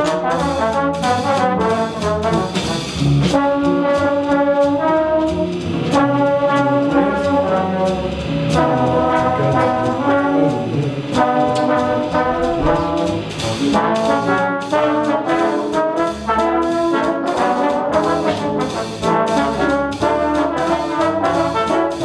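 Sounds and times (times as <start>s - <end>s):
trombones playing jazz: 0.0s - 22.0s.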